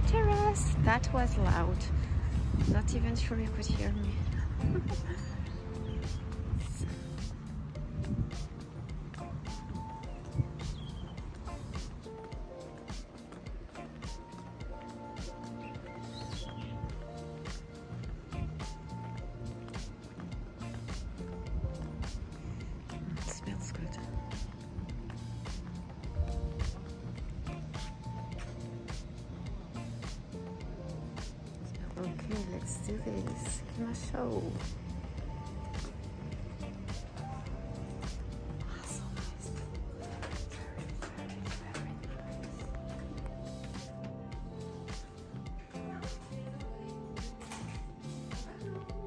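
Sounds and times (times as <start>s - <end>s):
background music melody: 0.0s - 49.0s.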